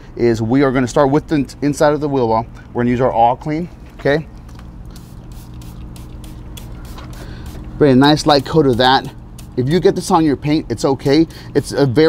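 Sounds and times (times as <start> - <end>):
steady low hum: 0.0 - 12.0
spray bottle squirting: 4.8 - 9.7.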